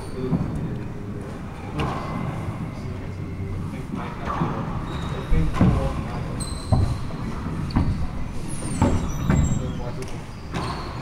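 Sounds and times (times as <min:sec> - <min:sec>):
sneakers squeaking on hardwood: 0:04.3 - 0:11.0.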